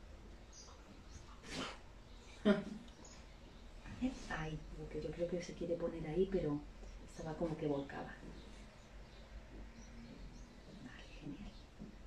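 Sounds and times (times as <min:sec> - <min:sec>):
dog breath puff: 0:01.4 - 0:01.8.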